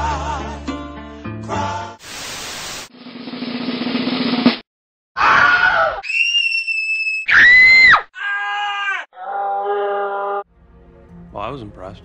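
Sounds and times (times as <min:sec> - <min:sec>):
drum roll: 0:02.9 - 0:04.6
people screaming: 0:05.2 - 0:10.4.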